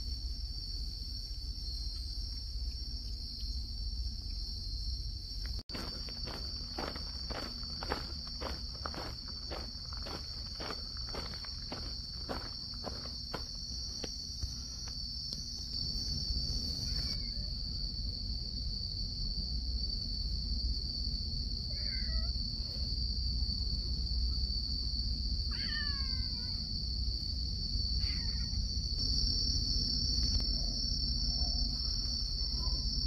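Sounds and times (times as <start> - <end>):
insects chirring: 0.0 - 33.0
footsteps: 5.7 - 15.0.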